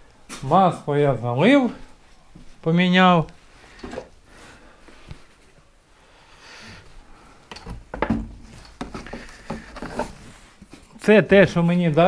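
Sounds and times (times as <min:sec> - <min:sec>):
rustling and handling: 0:07.4 - 0:12.0
objects knocking and clattering: 0:07.5 - 0:10.9.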